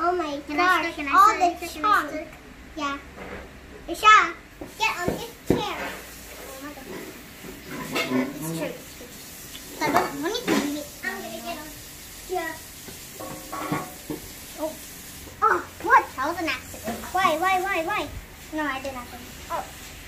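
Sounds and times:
children's voices: 0.0 - 3.1, 3.9 - 7.2, 9.7 - 12.6, 14.6 - 19.8.

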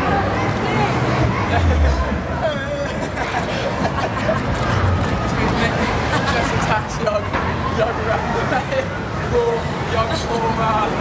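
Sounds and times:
hubbub of voices: 0.0 - 11.0
road traffic running past: 0.0 - 11.0
people laughing: 1.3 - 4.7, 5.6 - 6.8, 8.1 - 9.0.

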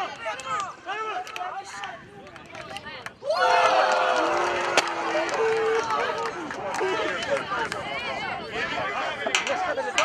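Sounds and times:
people shouting and cheering: 0.0 - 10.0.

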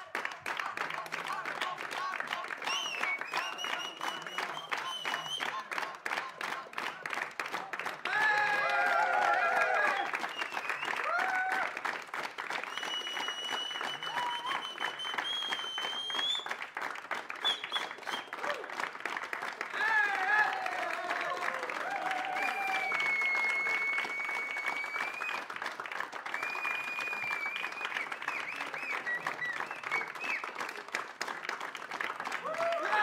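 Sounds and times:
audience applauding: 0.0 - 33.0
crowd cheering: 7.6 - 33.0
long high whistles: 10.2 - 11.0, 12.6 - 16.6, 22.4 - 25.5, 26.3 - 30.6.

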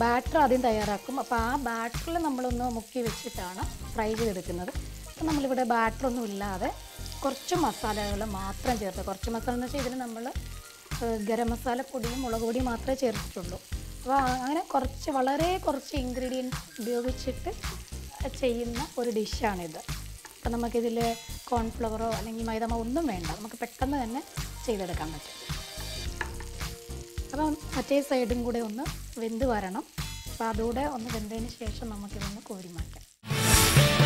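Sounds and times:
vegetables sizzling in oil: 0.0 - 34.0.

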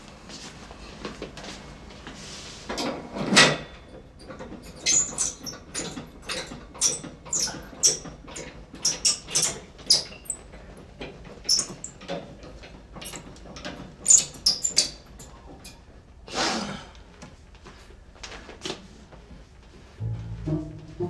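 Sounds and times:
bed crank squeaking and clicking: 4.2 - 15.8.

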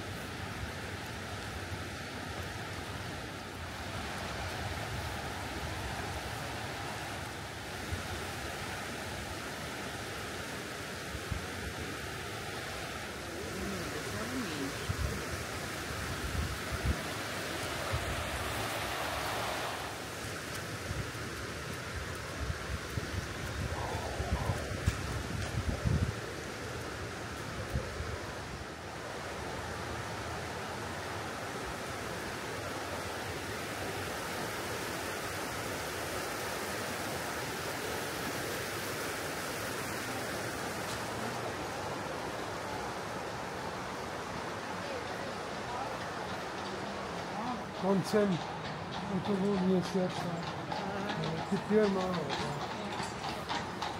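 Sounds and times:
river rushing over stones: 0.0 - 53.9
wind buffeting microphone: 13.1 - 28.7.

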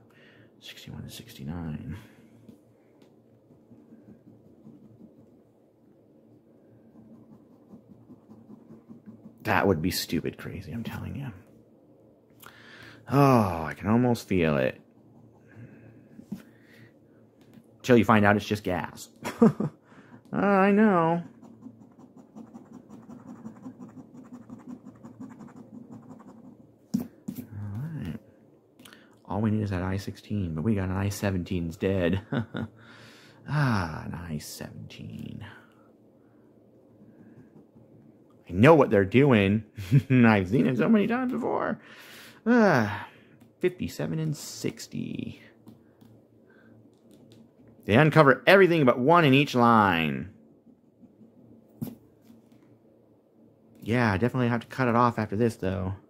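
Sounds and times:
coin scratching paper ticket: 7.0 - 9.4, 21.2 - 26.7.

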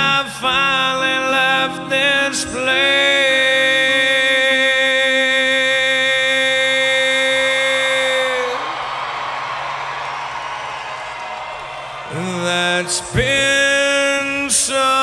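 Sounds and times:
man singing long note: 0.0 - 8.6
audience cheering: 7.2 - 13.6.

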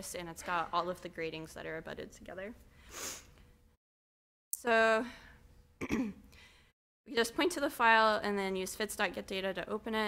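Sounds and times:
person clearing throat: 5.8 - 6.2.

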